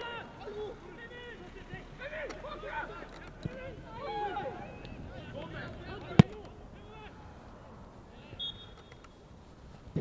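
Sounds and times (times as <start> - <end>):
players shouting: 0.0 - 9.0.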